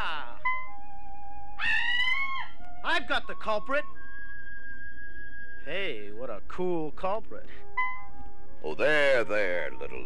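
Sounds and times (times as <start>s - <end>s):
background music: 0.0s - 10.0s
woman screaming: 1.6s - 2.6s.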